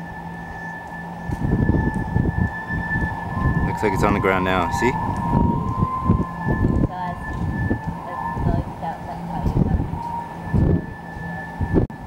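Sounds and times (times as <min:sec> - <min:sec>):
steady high-pitched tone: 0:00.0 - 0:12.0
people talking indistinctly: 0:06.8 - 0:07.4, 0:08.0 - 0:10.0.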